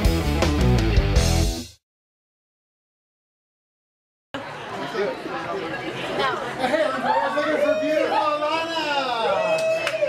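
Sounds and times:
people talking over each other: 4.4s - 9.3s.

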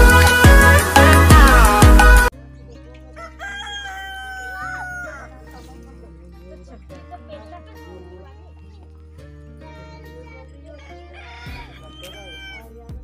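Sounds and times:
loud music: 0.0s - 2.3s
rooster crowing: 3.2s - 5.4s, 11.1s - 12.7s.

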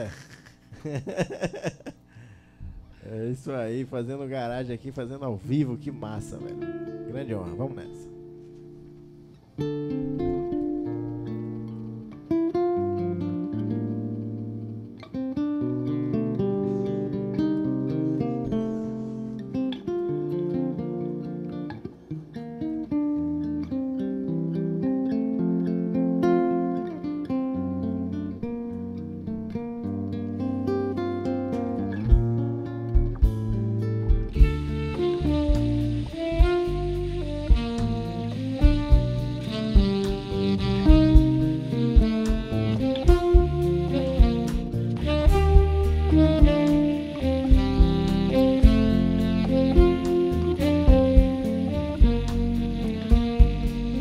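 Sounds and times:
electric guitars playing jazz: 0.0s - 54.0s
kick drum thumps: 32.1s - 32.4s, 33.0s - 34.8s, 37.4s - 46.9s, 47.5s - 49.0s, 50.9s - 52.5s, 53.1s - 53.8s
cymbals: 34.4s - 54.0s.

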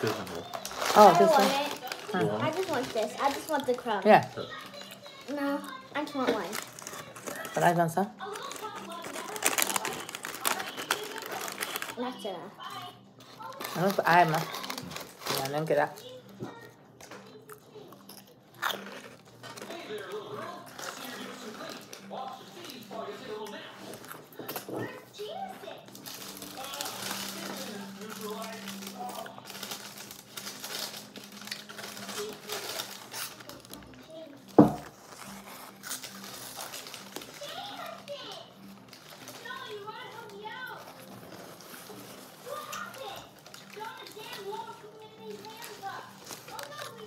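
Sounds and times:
chewing food: 0.0s - 7.6s, 8.2s - 12.0s, 12.6s - 47.0s
paper wrappers crinkling: 0.0s - 17.4s, 18.0s - 47.0s.

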